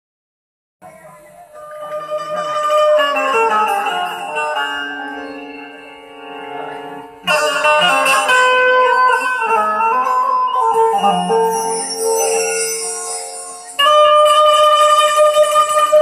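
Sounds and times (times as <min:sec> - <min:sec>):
plucked keyed string instrument melody: 0:01.4 - 0:16.0.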